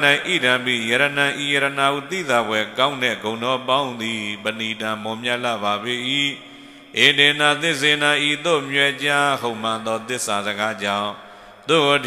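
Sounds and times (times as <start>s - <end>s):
monk chanting into a microphone: 0.0s - 12.0s.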